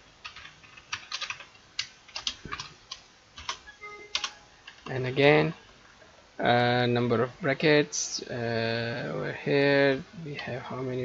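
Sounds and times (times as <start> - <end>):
computer alert chime: 3.7 - 4.5.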